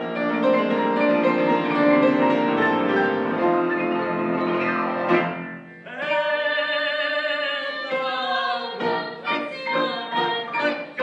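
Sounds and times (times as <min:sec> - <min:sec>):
grand piano accompaniment: 0:00.0 - 0:05.9, 0:08.7 - 0:11.0
girls singing together: 0:07.5 - 0:11.0.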